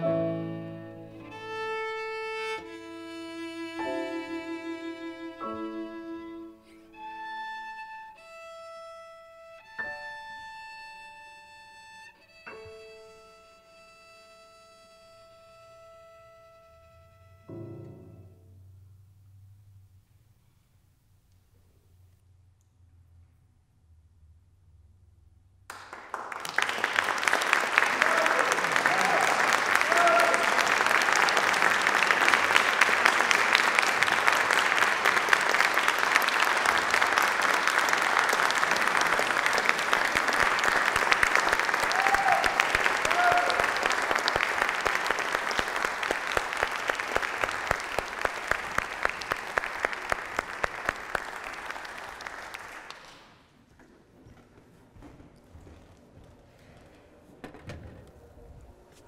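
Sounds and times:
audience applauding: 0:25.7 - 0:53.4
calls from crowd: 0:26.7 - 0:52.7.

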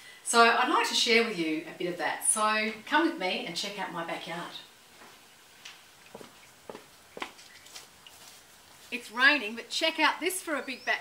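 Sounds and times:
soft footsteps: 0:04.9 - 0:09.4.

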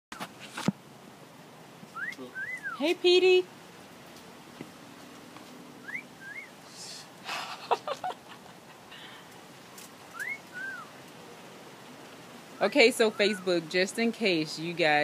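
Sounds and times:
bird wolf whistle: 0:01.9 - 0:02.8, 0:05.8 - 0:06.6, 0:10.1 - 0:10.9, 0:12.6 - 0:13.7.

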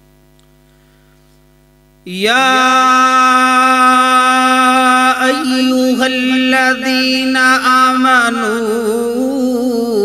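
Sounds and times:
faint mains hum: 0:00.0 - 0:10.0.

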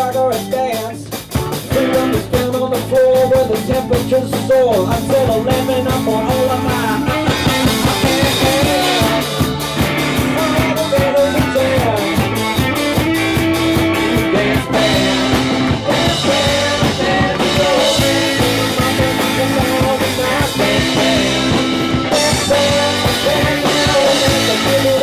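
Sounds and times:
bass: 0:00.0 - 0:25.0
drum kit: 0:00.0 - 0:25.0
electric guitars: 0:00.0 - 0:25.0
keyboard: 0:00.0 - 0:25.0.

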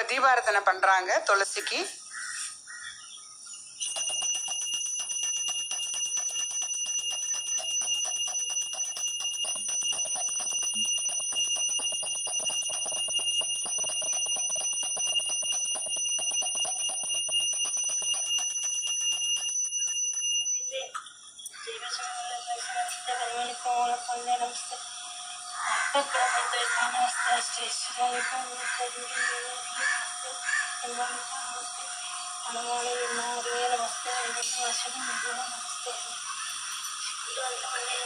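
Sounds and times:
hand bell ringing rapidly: 0:03.8 - 0:20.8, 0:29.2 - 0:38.0.

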